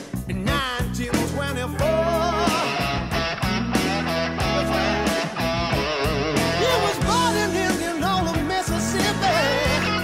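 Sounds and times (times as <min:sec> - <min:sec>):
blues-rock band: 0:00.0 - 0:10.0
electric guitar lead with vibrato: 0:00.0 - 0:10.0.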